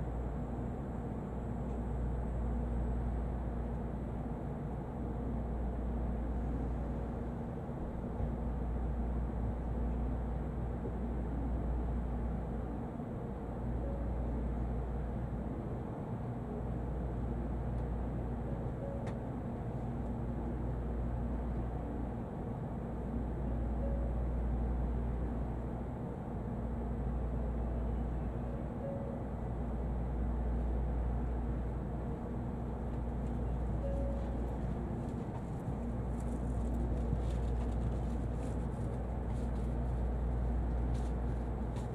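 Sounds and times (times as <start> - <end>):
train car hum and rumble: 0.0 - 41.9.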